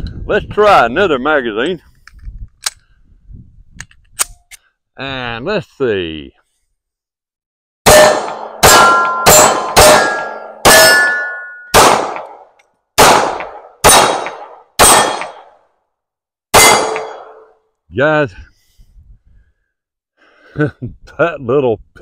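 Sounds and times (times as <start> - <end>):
metallic ring of steel target: 7.9 - 12.4, 13.1 - 15.5, 16.6 - 17.6
pistol shots: 7.9 - 12.4, 13.0 - 15.5, 16.5 - 17.4.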